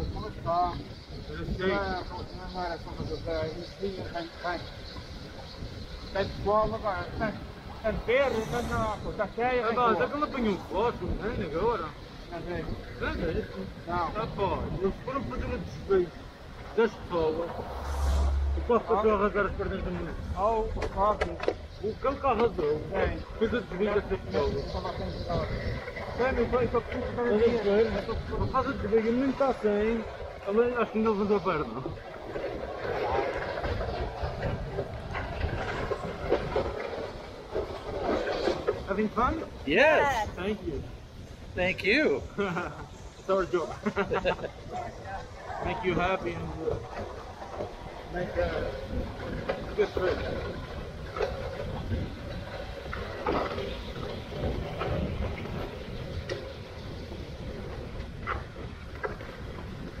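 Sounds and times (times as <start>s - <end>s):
sledge scraping on asphalt: 2.4s - 60.0s
short sharp scrapes: 8.2s - 9.2s, 17.5s - 19.0s.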